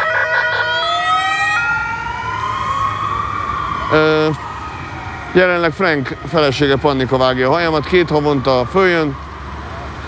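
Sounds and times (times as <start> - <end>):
emergency vehicle siren: 0.0 - 10.0
traffic rumble: 0.0 - 10.0.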